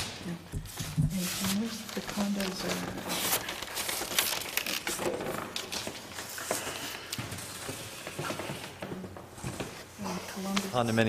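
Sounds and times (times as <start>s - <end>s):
paper sheets rustling: 0.0s - 11.0s.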